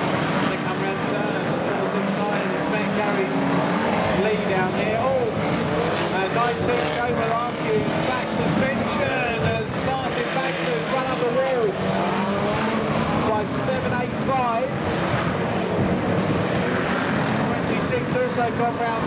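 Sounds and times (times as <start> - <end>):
racing car engines revving: 0.0 - 19.0.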